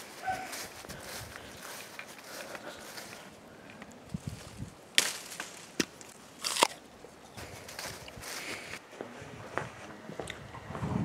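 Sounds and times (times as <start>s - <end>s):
apple crunching: 4.9s - 6.9s.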